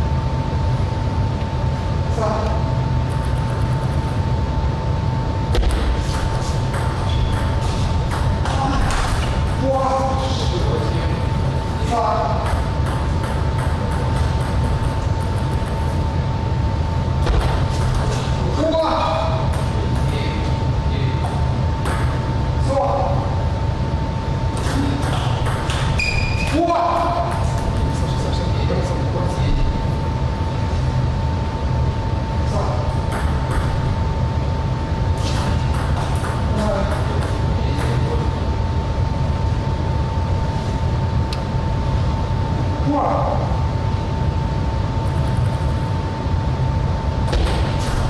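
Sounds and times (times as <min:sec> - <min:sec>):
constant hum: 0:00.0 - 0:48.0
racket striking ball: 0:05.5 - 0:09.3
shoe squeak: 0:25.2 - 0:26.6.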